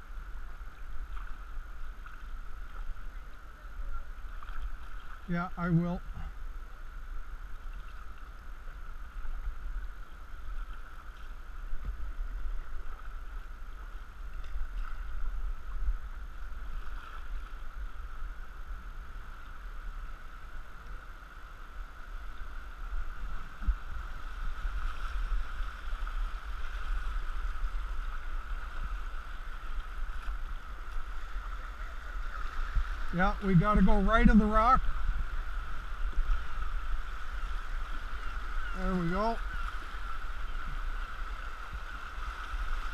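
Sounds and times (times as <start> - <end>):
river water rushing: 0.0 - 42.9.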